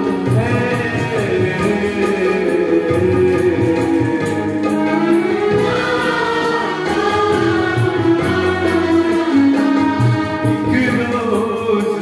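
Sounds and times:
chorus singing film song: 0:00.0 - 0:12.0.

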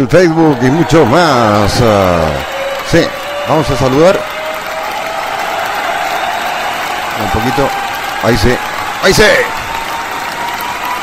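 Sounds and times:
man's voice: 0:00.0 - 0:04.2
applause: 0:00.1 - 0:11.0.

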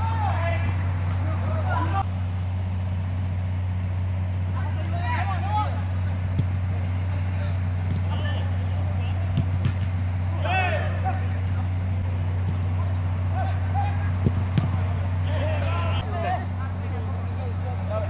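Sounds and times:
distant players shouting: 0:00.0 - 0:18.0
low mechanical hum: 0:00.0 - 0:18.0.

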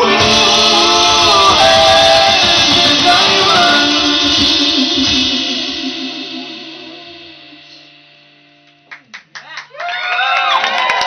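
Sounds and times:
rock band final chord ringing: 0:00.0 - 0:08.9.

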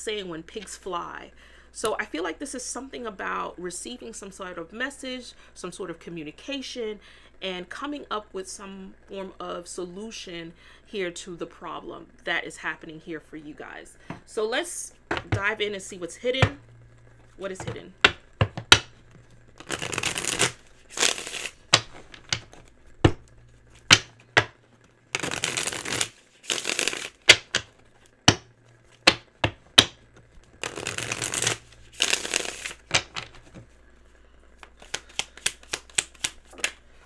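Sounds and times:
cards tapping and snapping: 0:18.0 - 0:19.0, 0:19.6 - 0:33.6, 0:34.6 - 0:36.8
cards being shuffled: 0:18.4 - 0:33.8, 0:34.6 - 0:36.8.

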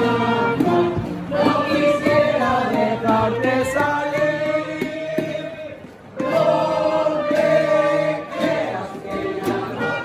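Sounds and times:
group singing long held notes: 0:00.0 - 0:10.0.

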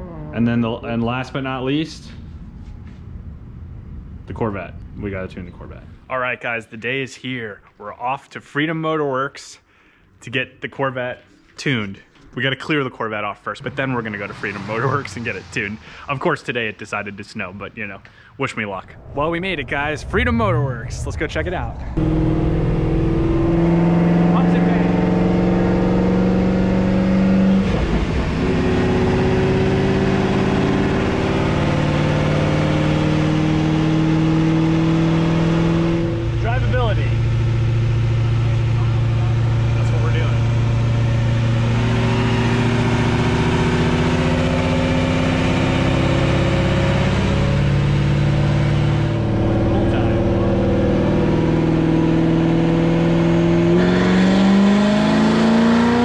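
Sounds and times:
car engine revving on dyno: 0:13.6 - 0:16.1, 0:21.9 - 0:56.0.

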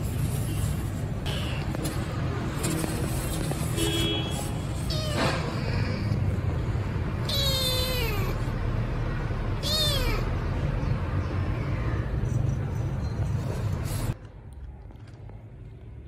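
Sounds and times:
kitten meowing: 0:07.2 - 0:08.5, 0:09.6 - 0:10.4.

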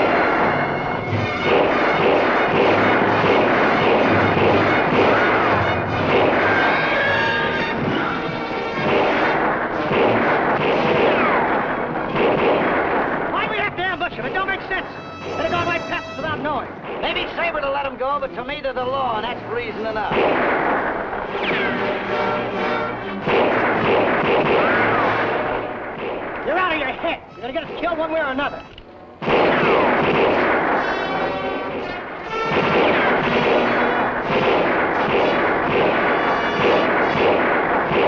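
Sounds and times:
rapid gunshots: 0:00.0 - 0:28.6, 0:29.2 - 0:38.0.

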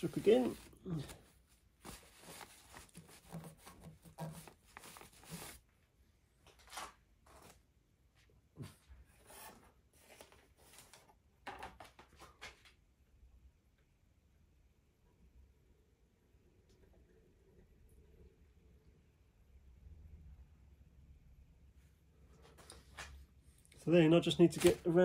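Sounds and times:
cloth rag rubbing on metal: 0:00.0 - 0:05.6
rustles and handling knocks: 0:01.8 - 0:05.6.

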